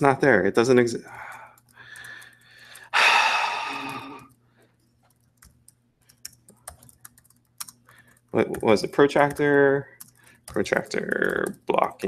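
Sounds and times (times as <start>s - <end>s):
soft breathing: 1.0s - 4.8s
person sighing: 1.2s - 4.2s.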